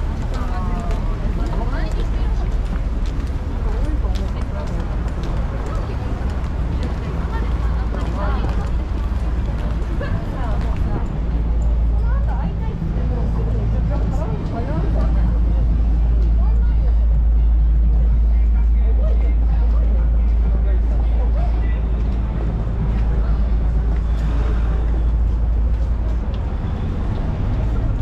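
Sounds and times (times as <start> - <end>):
pedestrians chattering: 0.0 - 28.0
road traffic rumble: 0.0 - 28.0.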